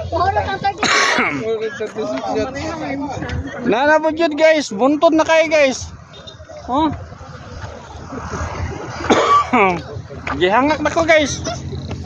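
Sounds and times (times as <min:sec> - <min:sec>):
man coughing: 0:00.8 - 0:01.6, 0:09.0 - 0:09.8.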